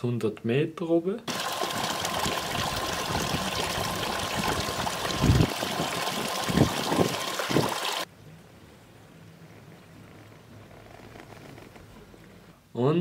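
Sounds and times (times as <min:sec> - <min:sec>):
water running and splashing: 0:01.3 - 0:08.1.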